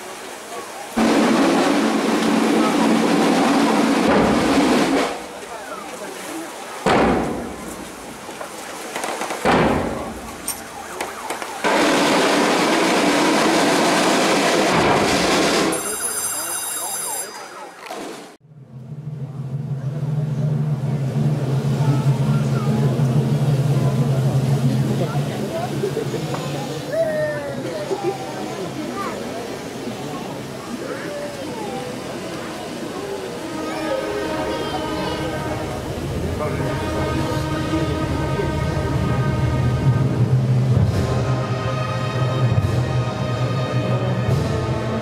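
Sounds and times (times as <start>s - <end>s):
crowd talking: 0.0s - 18.1s, 19.1s - 45.0s
loud even noise: 0.9s - 5.8s, 6.8s - 25.9s
firecracker bang: 1.0s - 5.3s, 6.8s - 8.2s, 9.0s - 16.0s.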